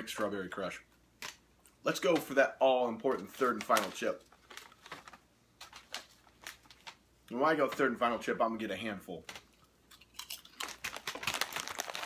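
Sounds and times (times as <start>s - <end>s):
potato chips crunching: 9.3s - 12.0s.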